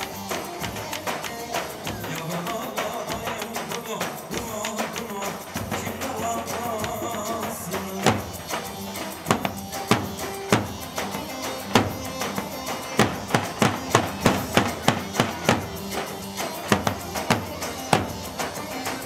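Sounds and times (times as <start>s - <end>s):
loud drum strikes: 1.8s - 19.0s
steady melody line: 8.0s - 19.0s.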